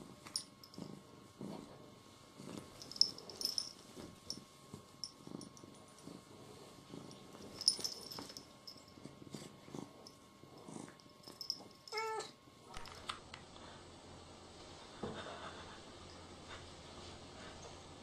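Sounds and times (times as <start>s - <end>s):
cat purring: 0.0s - 12.8s.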